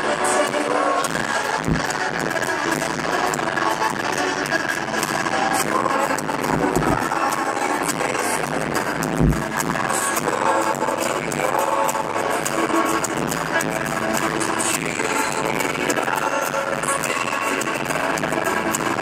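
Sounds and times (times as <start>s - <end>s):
acoustic guitar: 0.0s - 19.0s
drums: 0.0s - 19.0s
electric guitar: 0.0s - 19.0s.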